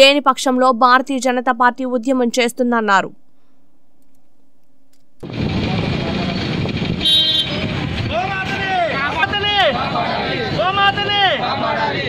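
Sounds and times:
street traffic: 5.2s - 12.0s
vehicle horn toot: 7.0s - 7.7s.

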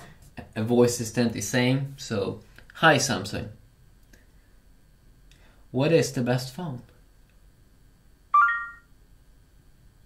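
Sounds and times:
rising three-note electronic chime: 8.4s - 8.8s.

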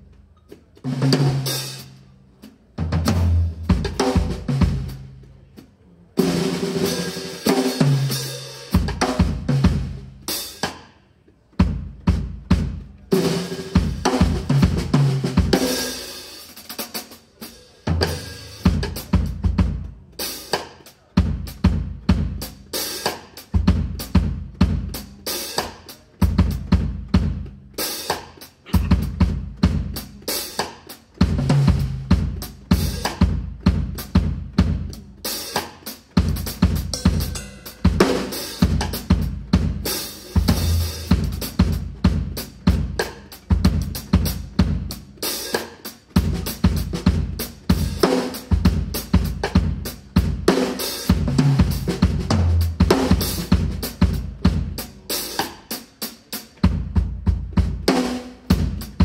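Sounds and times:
drum kit solo: 0.0s - 59.0s.

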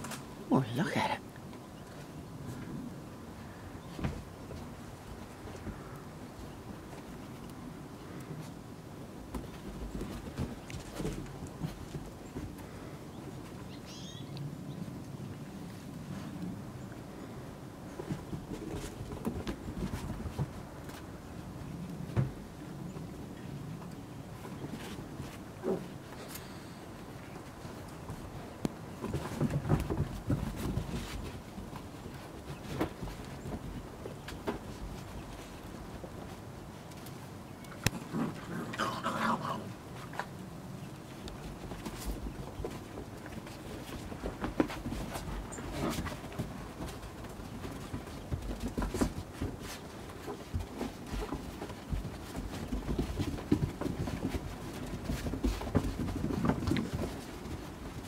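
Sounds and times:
puppies scuffling: 0.0s - 58.0s
puppy play growls: 37.9s - 40.4s.

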